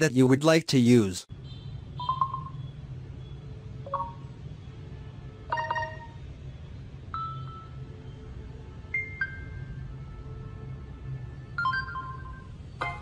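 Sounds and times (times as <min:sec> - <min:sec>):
phone notification chimes: 0:05.5 - 0:06.2.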